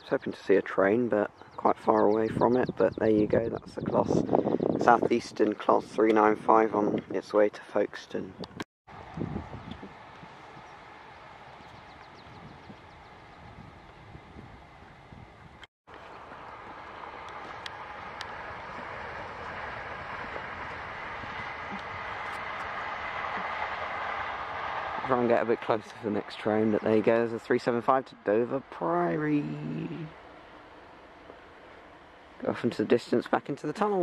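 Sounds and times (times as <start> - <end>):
distant trains rolling on rails: 8.9 - 34.0.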